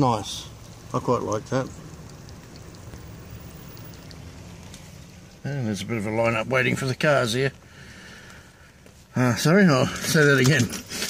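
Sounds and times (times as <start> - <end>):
raindrop ticks: 0.0 - 9.0
car engine low rumble: 0.0 - 10.3
light rain falling: 0.0 - 11.0.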